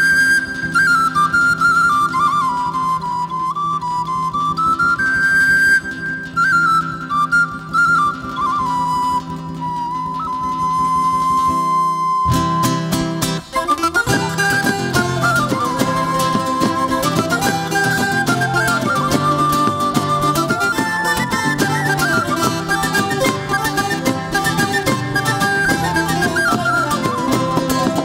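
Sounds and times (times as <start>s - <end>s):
flute melody: 0.0s - 28.0s
guitars: 0.0s - 28.0s
rhythmic percussion: 12.3s - 28.0s.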